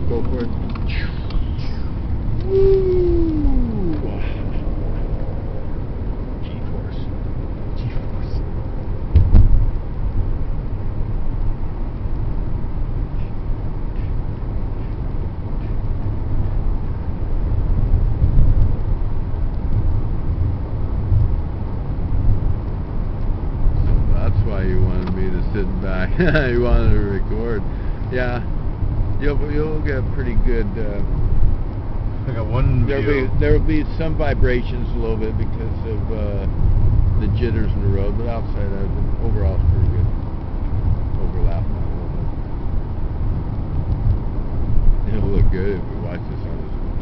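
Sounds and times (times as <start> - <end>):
road and engine rumble in car: 0.0 - 47.0
thump: 9.1 - 9.6.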